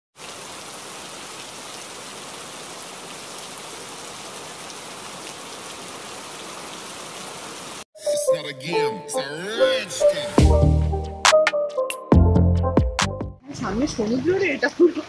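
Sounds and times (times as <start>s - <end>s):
rain on hard wet surfaces: 0.2s - 7.9s.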